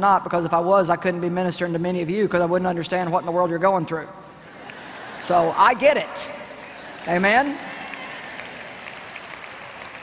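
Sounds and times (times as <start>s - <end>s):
audience applauding: 4.5s - 10.0s.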